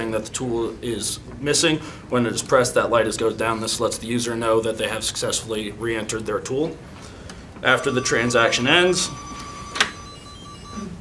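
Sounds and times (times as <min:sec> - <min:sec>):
faint high electronic tone: 0:07.7 - 0:11.0.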